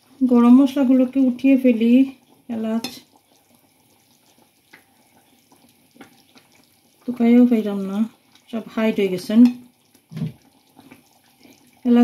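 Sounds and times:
woman talking: 0:00.2 - 0:03.0, 0:07.1 - 0:09.6
plastic spoon stirring curry in pan: 0:00.7 - 0:12.0.

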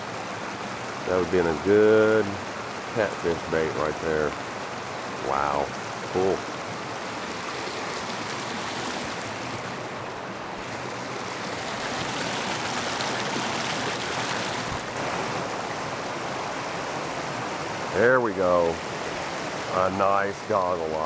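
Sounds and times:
creek water rushing over concrete: 0:00.0 - 0:21.0.

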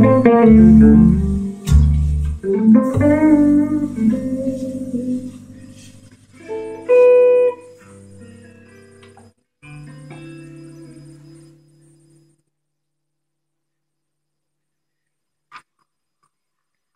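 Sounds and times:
electric guitar jazz chords: 0:00.0 - 0:12.3.

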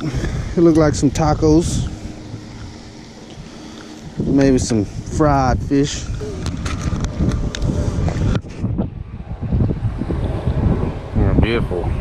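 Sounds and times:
wind buffeting microphone: 0:00.0 - 0:12.0
handling clicks and rustles: 0:05.8 - 0:08.5.

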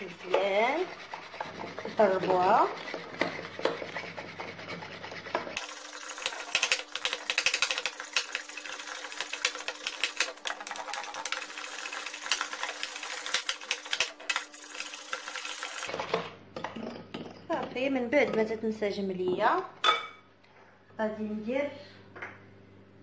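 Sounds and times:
whisk beating batter in bowl: 0:00.0 - 0:16.1.

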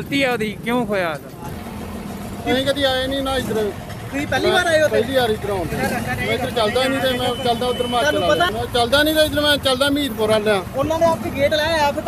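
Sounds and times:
vehicle engines running: 0:00.0 - 0:12.0.

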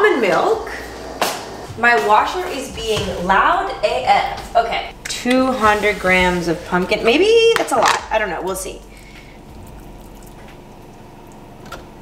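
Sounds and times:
washing machine humming: 0:00.0 - 0:12.0.

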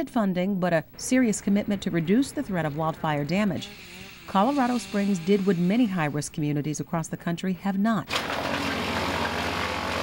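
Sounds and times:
chipper engine drone: 0:08.1 - 0:10.0.

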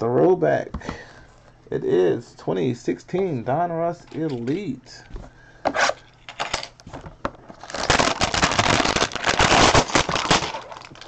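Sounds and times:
plastic wrapping crinkling: 0:07.4 - 0:11.0.

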